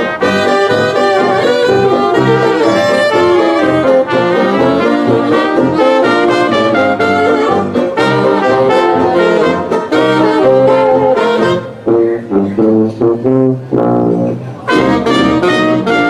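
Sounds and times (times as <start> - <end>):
traditional jazz band playing: 0.0 - 16.0.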